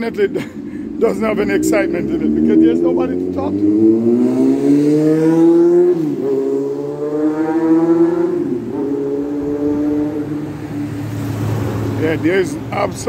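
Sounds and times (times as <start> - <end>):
vehicle engine accelerating: 0.6 - 13.0.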